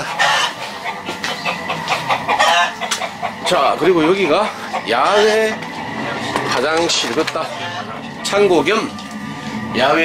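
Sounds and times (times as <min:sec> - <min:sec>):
chickens calling: 0:00.0 - 0:10.0.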